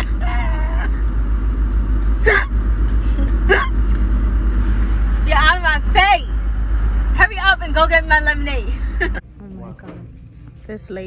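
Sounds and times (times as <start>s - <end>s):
low rumble in a car cabin: 0.0s - 11.0s.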